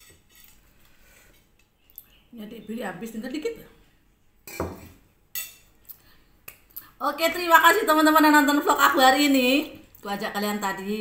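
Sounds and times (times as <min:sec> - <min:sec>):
cutlery clinking on ceramic plate: 0:04.5 - 0:05.7.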